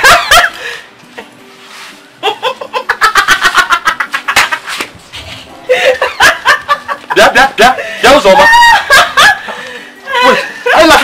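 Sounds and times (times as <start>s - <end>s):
woman laughing mockingly: 0.0s - 0.6s, 2.2s - 7.2s, 8.3s - 11.0s.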